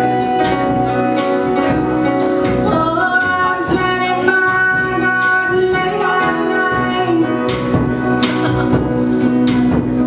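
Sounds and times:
acoustic guitar: 0:00.0 - 0:10.0
folk-country band playing: 0:00.0 - 0:10.0
piano: 0:00.0 - 0:10.0
woman singing: 0:02.6 - 0:07.8.

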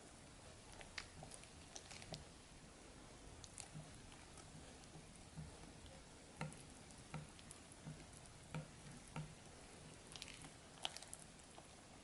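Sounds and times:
whisk stirring batter: 0:00.3 - 0:02.4, 0:03.3 - 0:12.0
whisk tapping bowl: 0:03.5 - 0:11.0.

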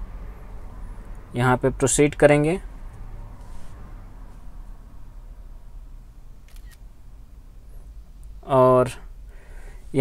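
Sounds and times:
phone camera shutter click: 0:06.5 - 0:06.8.

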